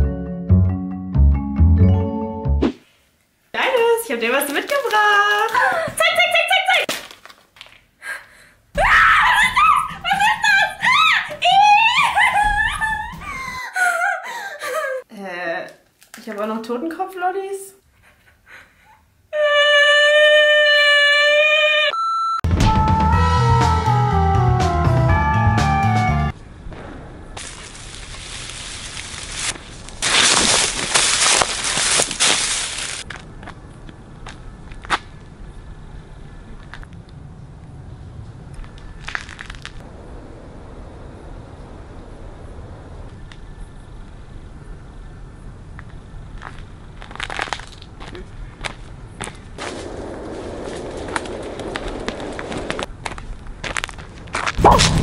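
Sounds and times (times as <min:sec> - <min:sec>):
short high beep: 0:22.0 - 0:22.4
short crunching noises: 0:27.4 - 0:33.3, 0:38.6 - 0:39.8.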